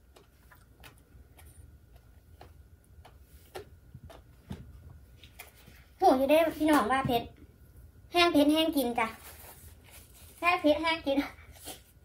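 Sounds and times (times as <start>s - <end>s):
chewing crunchy food: 0.0s - 4.3s
low steady hum: 0.0s - 12.0s.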